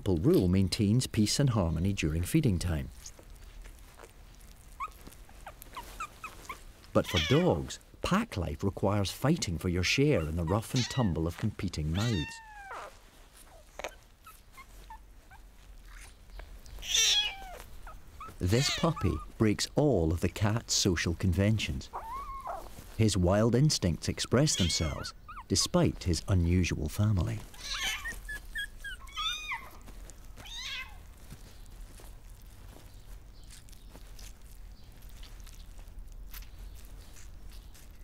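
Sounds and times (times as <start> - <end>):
faint kitten squeaks: 3.9 - 7.8, 9.9 - 19.4, 21.9 - 22.9, 24.3 - 25.8, 27.4 - 34.6
kitten mewing: 4.8 - 7.8, 10.2 - 11.2, 11.9 - 13.0, 16.8 - 19.4, 24.4 - 25.5, 27.4 - 29.8.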